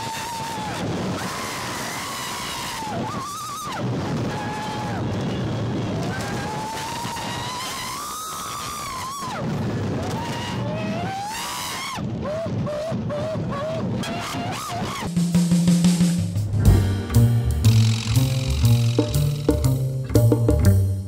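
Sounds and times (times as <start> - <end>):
women screaming: 6.0 - 9.4.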